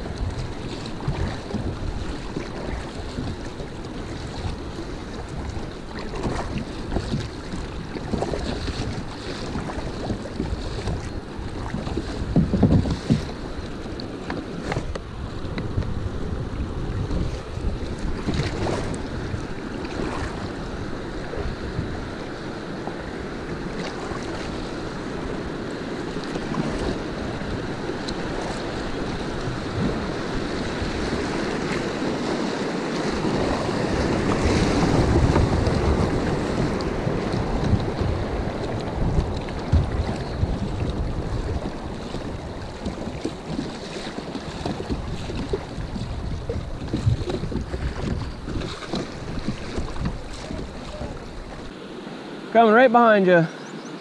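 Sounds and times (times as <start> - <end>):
wind buffeting microphone: 0.0 - 51.7
river current rushing and splashing: 0.0 - 54.0.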